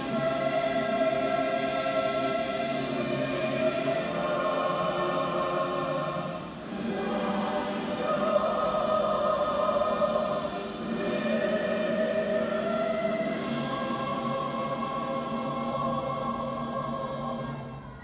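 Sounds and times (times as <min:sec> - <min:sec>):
choir singing an anthem: 0:00.0 - 0:18.0.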